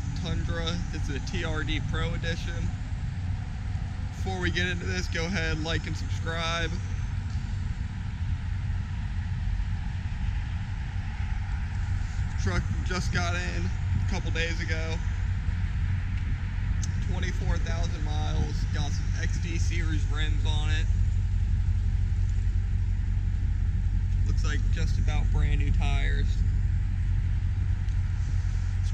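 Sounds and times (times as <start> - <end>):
steady low rumble: 0.0 - 28.9
truck engine idling: 0.0 - 28.9.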